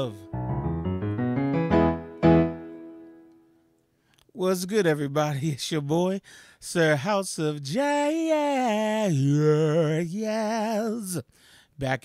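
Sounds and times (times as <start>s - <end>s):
piano playing: 0.0s - 3.6s.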